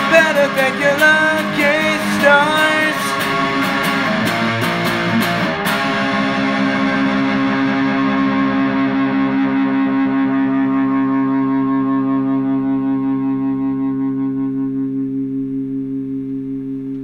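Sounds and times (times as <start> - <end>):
distorted electric guitar chord: 0.0 - 17.0.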